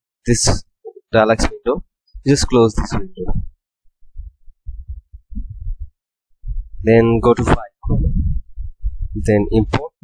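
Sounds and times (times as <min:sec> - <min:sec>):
man speaking: 0:00.3 - 0:03.4, 0:06.8 - 0:08.1, 0:09.2 - 0:10.0
low rumbles and bumps on microphone: 0:01.4 - 0:10.0.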